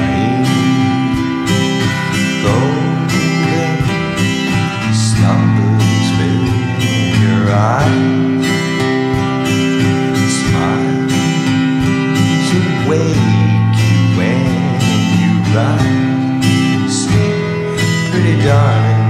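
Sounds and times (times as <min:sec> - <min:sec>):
acoustic guitar strummed chords: 0:00.0 - 0:19.0
man singing: 0:00.0 - 0:19.0.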